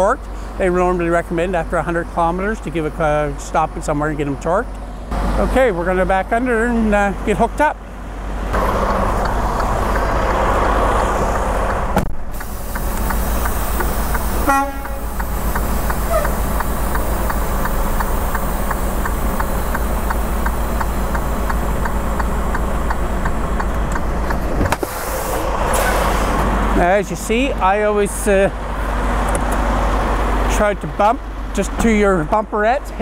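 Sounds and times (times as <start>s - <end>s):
truck diesel engine running: 0.0s - 33.0s
light ticking: 12.4s - 24.4s
horn-like toot: 14.4s - 15.2s.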